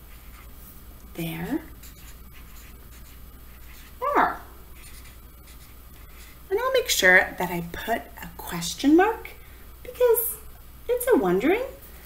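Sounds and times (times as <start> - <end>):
marker scratching on paper: 0.0 - 0.5, 1.8 - 4.0, 4.8 - 6.4.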